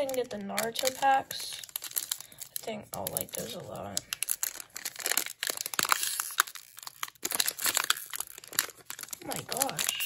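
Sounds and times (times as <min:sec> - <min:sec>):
foil wrapper crinkling: 0:00.0 - 0:10.0.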